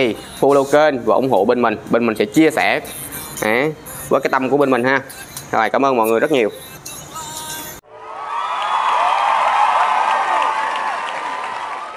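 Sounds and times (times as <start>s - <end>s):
crowd cheering and whooping: 7.9s - 11.9s.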